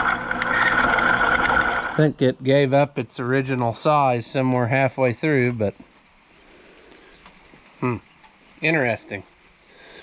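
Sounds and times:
faint ticks: 5.8 - 8.4
man saying hmm: 7.8 - 8.0.

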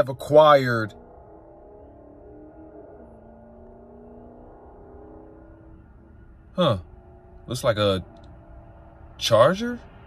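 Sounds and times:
muffled car engine: 0.0 - 10.0.

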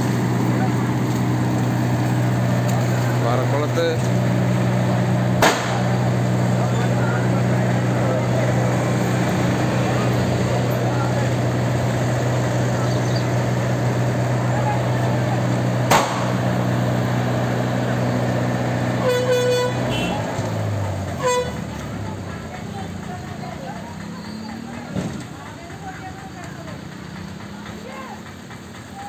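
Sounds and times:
low engine hum: 0.0 - 29.0
voices: 0.0 - 29.0
sharp knock: 5.4 - 5.8, 15.9 - 16.4
vehicle horn tooting: 19.0 - 20.3, 21.2 - 21.6.

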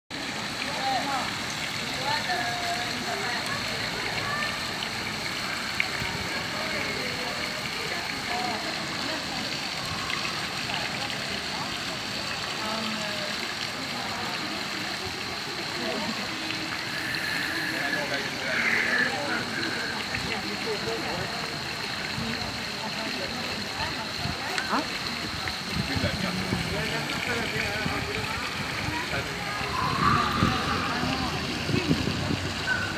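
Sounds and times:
fountain water splashing: 0.1 - 32.9
distant voices: 13.3 - 32.9.

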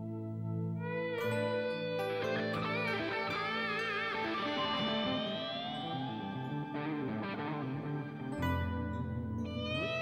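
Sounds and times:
electric guitar lead melody: 0.0 - 10.0.

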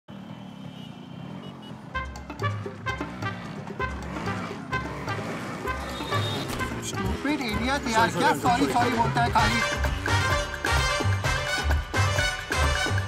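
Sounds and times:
motorcycle and scooter traffic: 0.0 - 13.0
music with steady beat: 8.6 - 13.0.

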